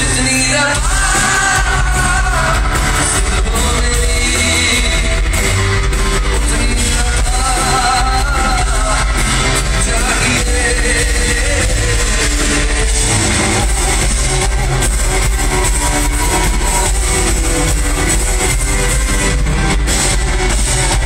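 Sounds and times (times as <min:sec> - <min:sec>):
man singing into microphone: 0:00.0 - 0:13.8
live band with drums and bass: 0:00.0 - 0:21.0.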